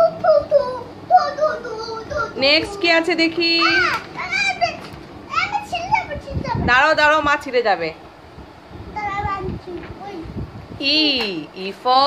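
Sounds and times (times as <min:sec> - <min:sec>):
young children babbling: 0:00.0 - 0:02.8, 0:03.6 - 0:06.6.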